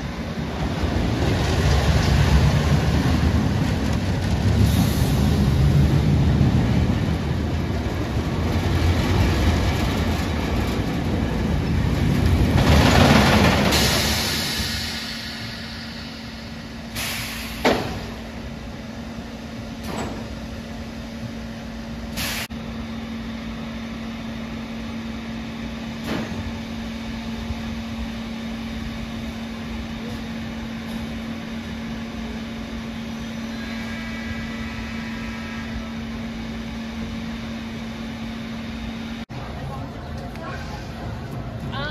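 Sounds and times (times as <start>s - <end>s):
roller coaster wheels rumbling on track: 0.0s - 22.1s, 22.8s - 41.9s.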